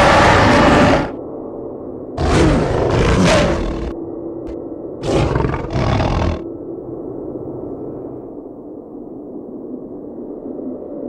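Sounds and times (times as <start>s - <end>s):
monster roars: 0.0s - 1.2s, 2.2s - 4.0s, 5.0s - 6.4s.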